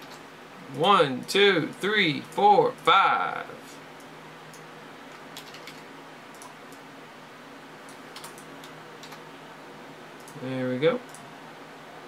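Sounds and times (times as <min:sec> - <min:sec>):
faint steady hum: 0:00.0 - 0:12.0
keyboard and mouse clicks: 0:04.5 - 0:06.8, 0:07.9 - 0:09.2, 0:10.2 - 0:10.4.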